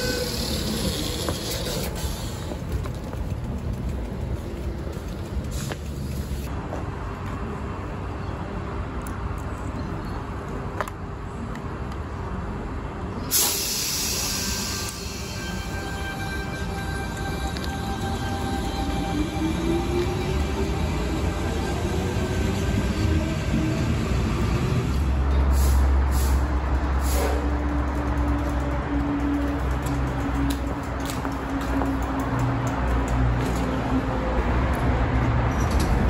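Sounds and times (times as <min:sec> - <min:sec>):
train rumbling: 0:00.0 - 0:36.0.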